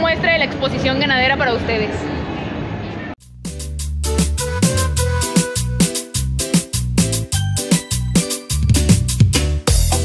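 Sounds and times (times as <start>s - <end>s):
woman speaking: 0.0s - 2.1s.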